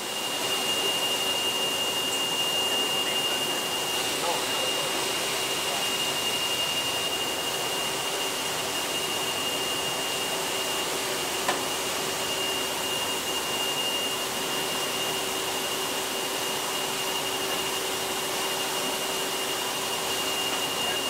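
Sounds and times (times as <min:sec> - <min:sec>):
machine whining and humming: 0:00.0 - 0:21.0.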